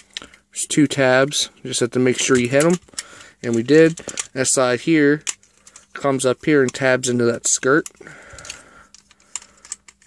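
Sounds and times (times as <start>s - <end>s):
plastic pieces clicking into place: 6.6s - 10.0s.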